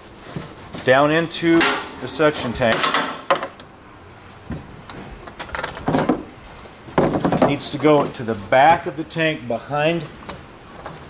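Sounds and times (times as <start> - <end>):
faint rustling: 0.0 - 11.0
soft bumps: 4.2 - 9.0.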